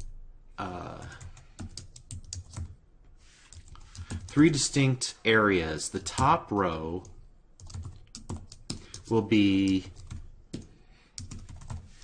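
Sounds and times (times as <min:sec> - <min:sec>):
typing on computer keyboard: 0:00.8 - 0:02.8, 0:03.5 - 0:04.4, 0:07.0 - 0:12.0.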